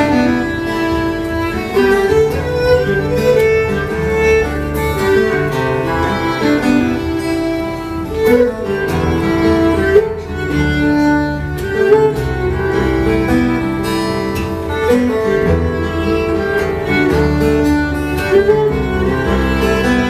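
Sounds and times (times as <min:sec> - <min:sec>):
fiddle ensemble playing lively tune: 0:00.0 - 0:20.0.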